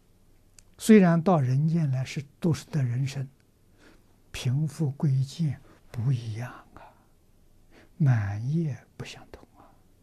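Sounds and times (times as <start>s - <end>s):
elderly man speaking: 0.8s - 3.4s, 4.3s - 7.0s, 8.0s - 9.4s.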